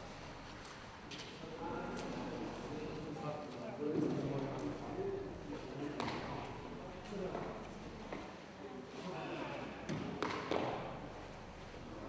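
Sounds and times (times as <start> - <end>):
people talking in a hall: 0.0 - 12.0.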